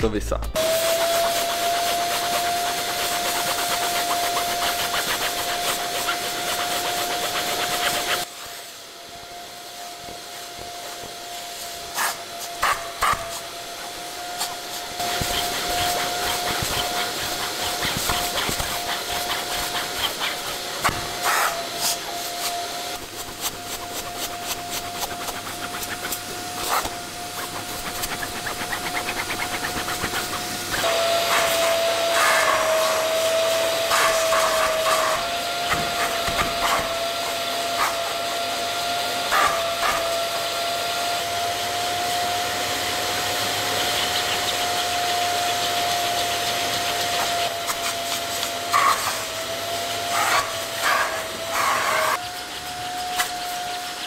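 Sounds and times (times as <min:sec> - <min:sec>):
vacuum cleaner suction whine: 0:00.5 - 0:54.0.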